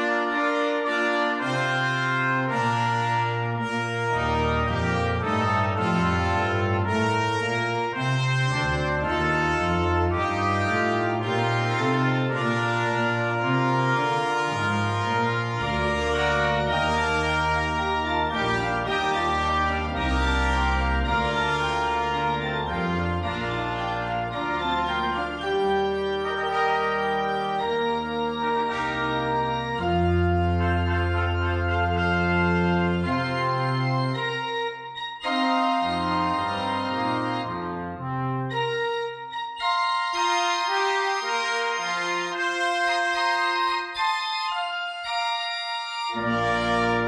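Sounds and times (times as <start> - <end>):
deep organ pedal bass: 0.0 - 47.0
organ playing sustained chords: 0.0 - 47.0.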